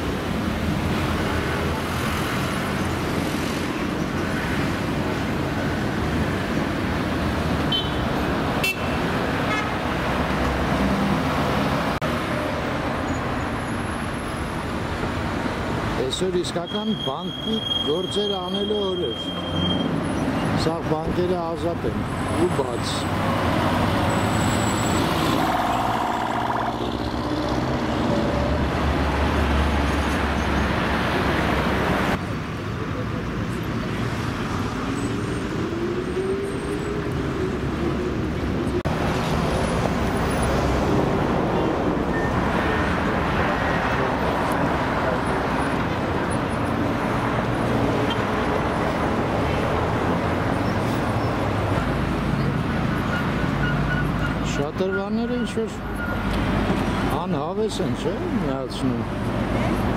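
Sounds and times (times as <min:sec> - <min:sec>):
passing cars: 0:00.0 - 0:59.9.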